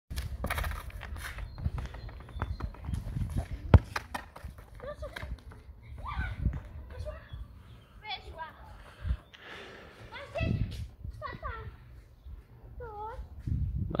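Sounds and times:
football kicked and bouncing: 0:00.1 - 0:05.6
wind rumble on microphone: 0:01.0 - 0:04.6, 0:05.2 - 0:07.6, 0:10.3 - 0:14.0.

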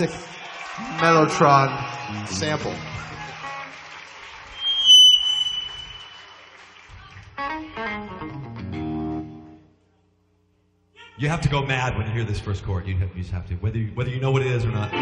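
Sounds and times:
held guitar chords: 0:07.4 - 0:09.7, 0:14.7 - 0:15.0.

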